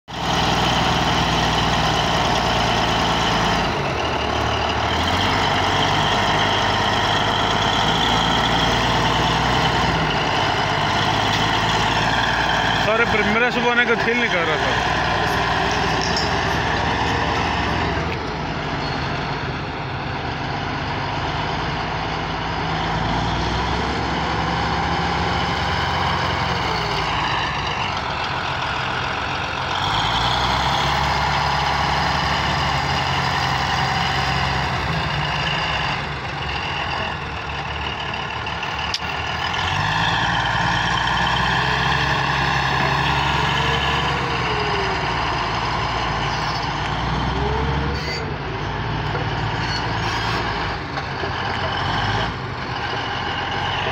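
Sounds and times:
bulldozer diesel engine under load: 0:00.1 - 0:53.9.

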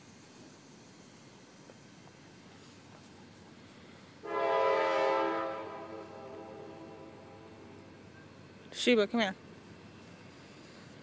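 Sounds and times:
horn blast: 0:04.2 - 0:07.7.

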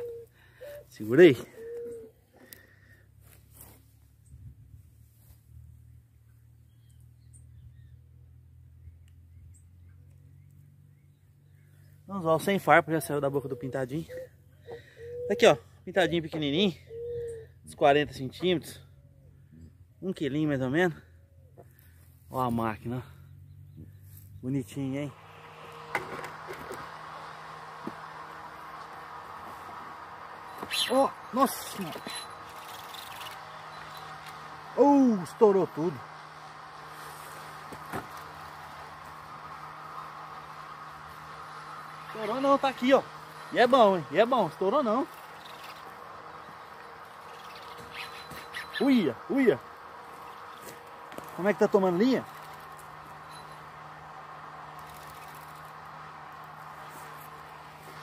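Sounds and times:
faint bird chirps: 0:00.0 - 0:03.0, 0:13.3 - 0:17.7, 0:30.4 - 0:34.3, 0:45.2 - 0:49.3
low hum: 0:23.0 - 0:58.0
small clicks: 0:31.8 - 0:34.4, 0:52.3 - 0:53.6, 0:54.7 - 0:55.9.

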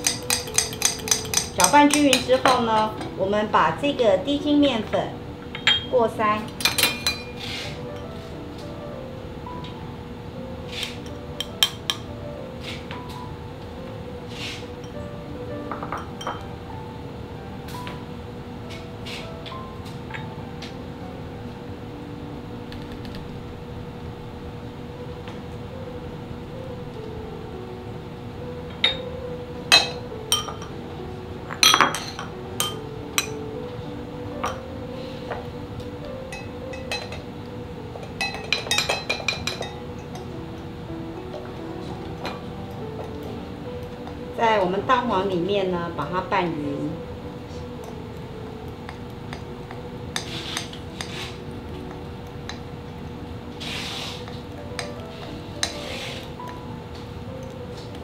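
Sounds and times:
metal utensils clinking on glass: 0:00.0 - 0:03.0, 0:05.6 - 0:07.4, 0:38.0 - 0:40.2
soft background music: 0:00.0 - 0:58.0.

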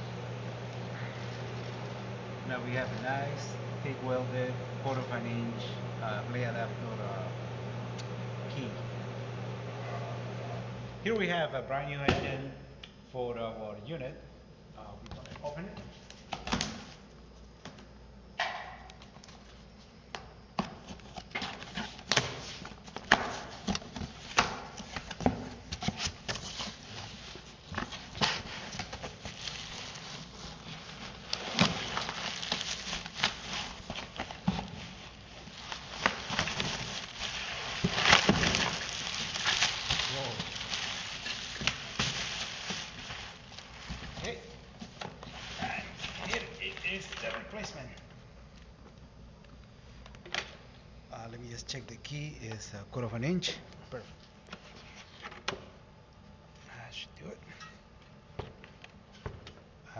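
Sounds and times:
plastic wrapping crinkling: 0:21.0 - 0:48.0.

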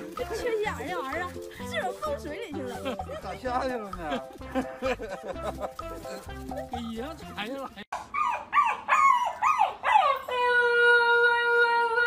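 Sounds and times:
puppy yelping and howling: 0:08.0 - 0:11.8.

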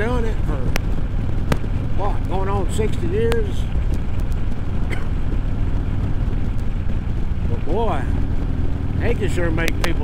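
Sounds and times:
motorcycle engine cruising: 0:00.0 - 0:10.0
wind and road noise: 0:00.0 - 0:10.0.

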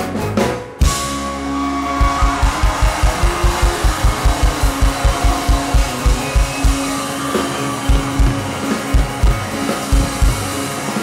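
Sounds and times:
live folk-rock band playing: 0:00.0 - 0:11.0
fast kick-drum beats: 0:02.0 - 0:07.1, 0:07.8 - 0:10.6.

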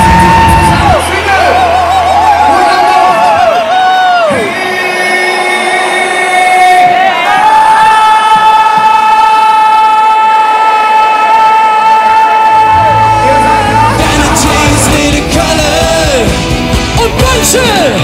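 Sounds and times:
band bass: 0:00.0 - 0:07.1, 0:12.6 - 0:18.0
crowd noise: 0:00.0 - 0:18.0
singer with vibrato: 0:00.0 - 0:18.0.

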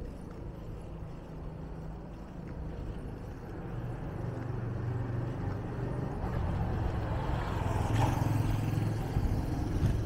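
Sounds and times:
small motorbike engine hum: 0:00.0 - 0:10.0.

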